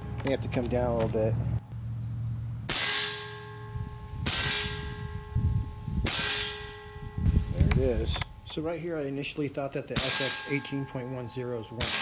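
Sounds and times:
metallic ring: 0:02.7 - 0:12.0
air rifle shots: 0:04.2 - 0:05.0, 0:06.0 - 0:06.8, 0:09.9 - 0:10.6, 0:11.8 - 0:12.0.

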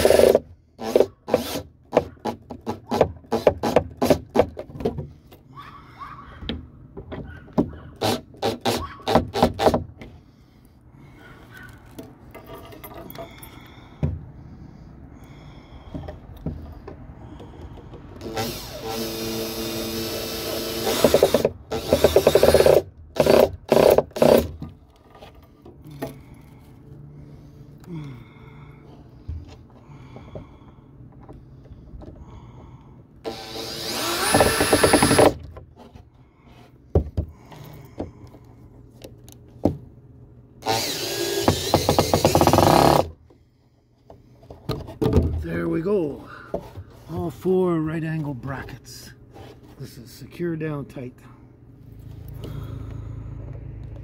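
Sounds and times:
cordless drill driving screws: 0:00.0 - 0:04.2, 0:08.0 - 0:09.8, 0:18.2 - 0:24.5, 0:33.2 - 0:35.4, 0:40.6 - 0:43.1
handling and knocking wood: 0:01.9 - 0:05.2, 0:06.4 - 0:07.9, 0:36.9 - 0:38.4, 0:44.0 - 0:45.6.

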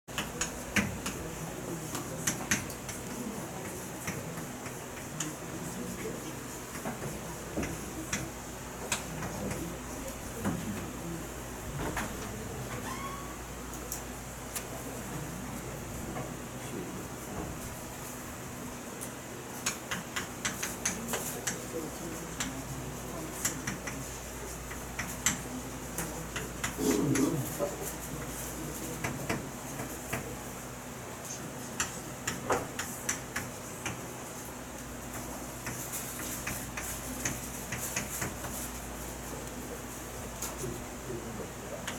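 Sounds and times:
chalk tapping on blackboard: 0:19.6 - 0:21.6, 0:23.3 - 0:26.8, 0:28.2 - 0:30.4, 0:31.8 - 0:34.1, 0:35.1 - 0:38.9.

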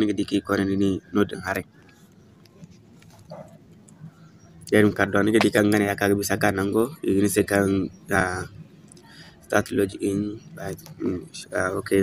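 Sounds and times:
man speaking: 0:00.0 - 0:01.7, 0:04.7 - 0:08.6, 0:09.5 - 0:12.0.

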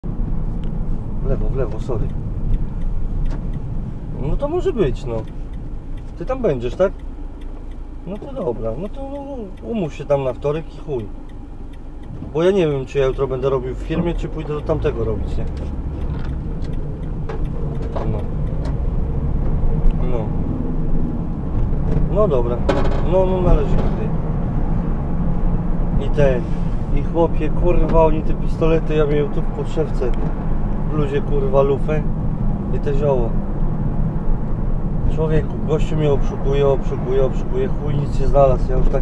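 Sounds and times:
vehicle engine and tyres rumbling: 0:00.0 - 0:39.0.

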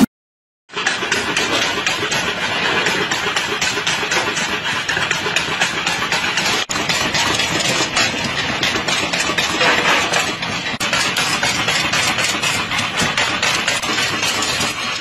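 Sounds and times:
rapid clatter of bamboo: 0:00.7 - 0:15.0
machine motor running: 0:00.8 - 0:15.0.

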